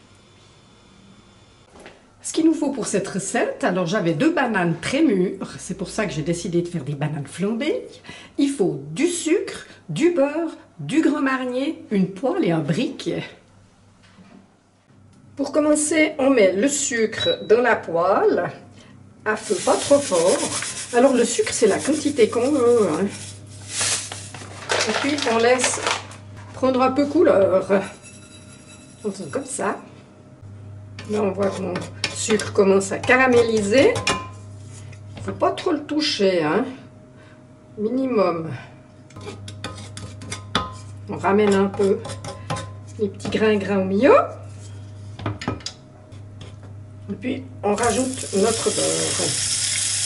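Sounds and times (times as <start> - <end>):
steady low hum: 11.5 - 49.0
paper bag rustling: 23.0 - 26.2
sugar trickling into a pan: 48.0 - 50.0.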